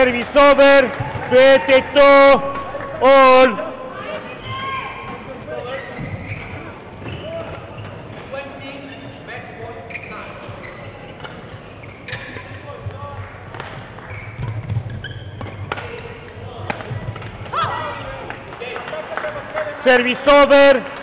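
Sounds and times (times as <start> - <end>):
rackets hitting shuttlecock: 11.1 - 12.6, 13.4 - 18.4.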